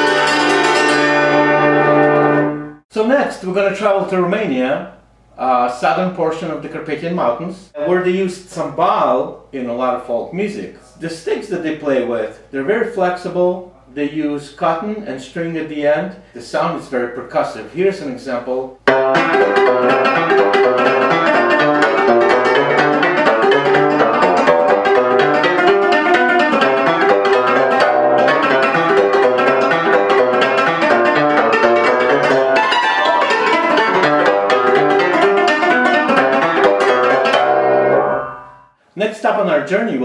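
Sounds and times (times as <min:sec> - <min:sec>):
cimbalom playing fast runs: 0:18.9 - 0:38.5.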